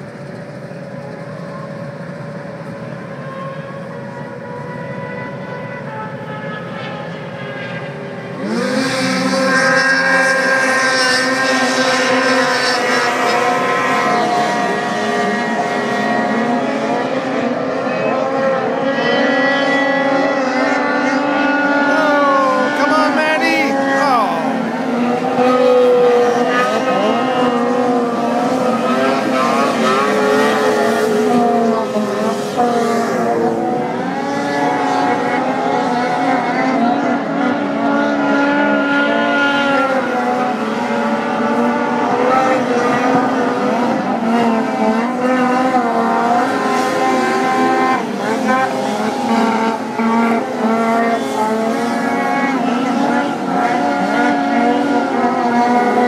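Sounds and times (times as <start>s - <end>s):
snowmobile engines racing: 0.0s - 56.0s.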